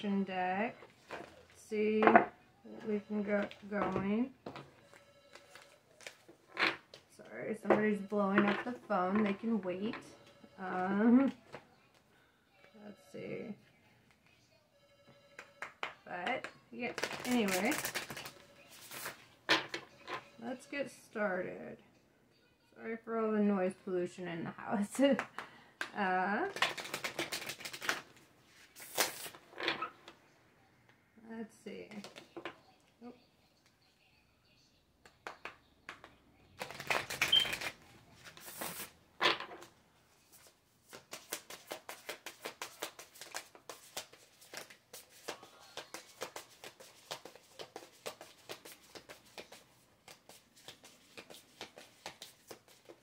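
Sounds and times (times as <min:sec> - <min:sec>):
cards being shuffled: 0:16.9 - 0:19.8, 0:26.5 - 0:29.8, 0:35.4 - 0:39.7, 0:40.3 - 0:53.0
cards snapping: 0:26.6 - 0:28.0, 0:36.6 - 0:38.9, 0:40.9 - 0:53.0.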